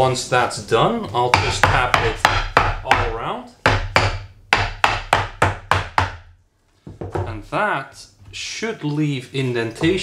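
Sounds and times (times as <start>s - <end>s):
mallet tapping on wood: 1.2s - 6.3s.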